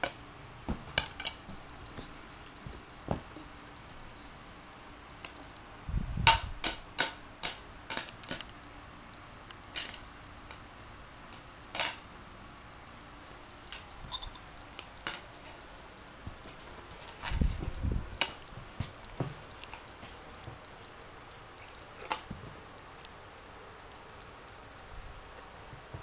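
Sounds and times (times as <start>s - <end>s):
dull thumps: 0.6s - 3.5s.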